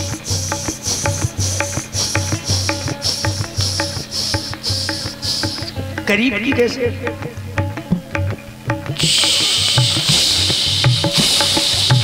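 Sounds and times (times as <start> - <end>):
dholak drum beats: 0.0 - 12.0
high-pitched rhythmic jingling: 0.0 - 12.0.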